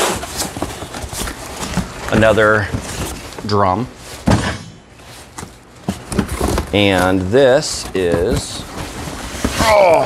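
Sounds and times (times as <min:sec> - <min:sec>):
cardboard scraping: 0:00.0 - 0:10.0.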